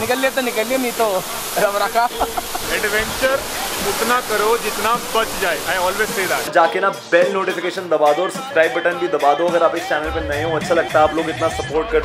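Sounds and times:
waterfall rushing: 0.0s - 6.5s
men talking: 0.0s - 12.0s.

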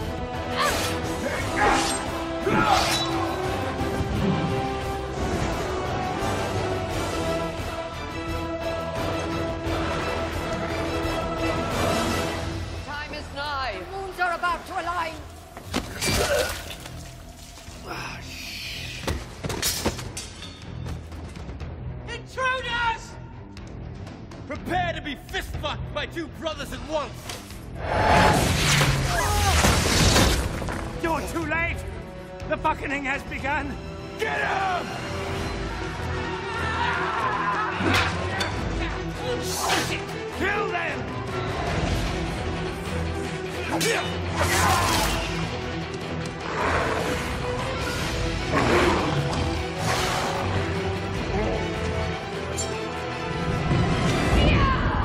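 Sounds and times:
fight scene music: 0.0s - 18.2s, 18.8s - 55.0s.

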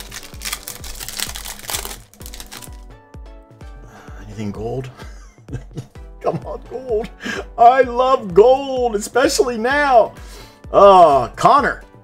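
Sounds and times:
foil wrapper crinkling: 0.0s - 2.9s
background music with beat: 0.0s - 12.0s.

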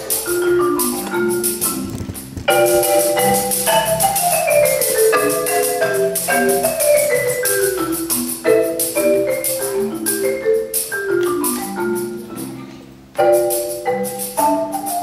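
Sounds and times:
marimba fast cascading runs: 0.0s - 12.6s, 13.2s - 15.0s.

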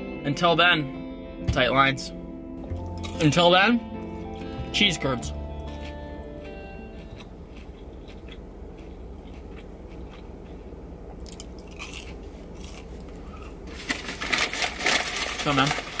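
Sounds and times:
steady low hum: 0.8s - 16.0s
person chewing cheese curd: 5.5s - 13.8s
rustling and crackling: 12.1s - 16.0s.

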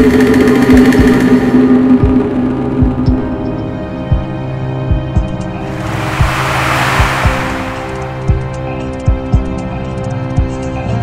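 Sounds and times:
rushing swell of noise: 5.6s - 8.9s.

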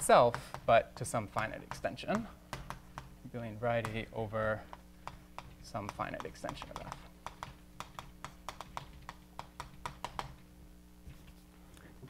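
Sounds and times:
chalk tapping on blackboard: 0.0s - 10.4s.

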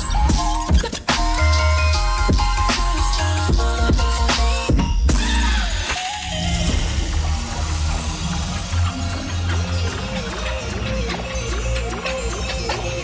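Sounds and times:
electronic dance music: 0.0s - 13.0s.

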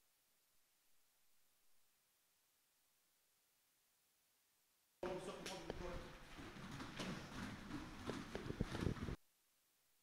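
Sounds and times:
feet moving on gym mats: 5.0s - 9.2s.

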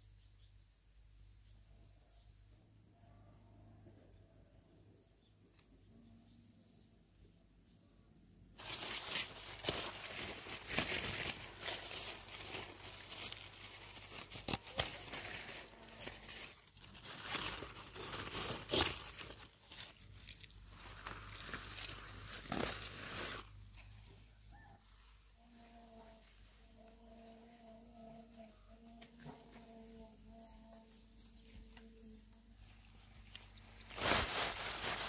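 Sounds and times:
leaves rustling and crackling: 8.6s - 27.4s, 29.0s - 35.0s
stalks snapping and tearing: 14.0s - 22.9s.

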